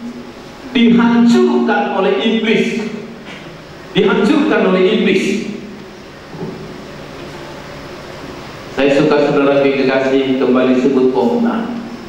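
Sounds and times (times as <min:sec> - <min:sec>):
hall room noise hiss: 0:00.0 - 0:12.0.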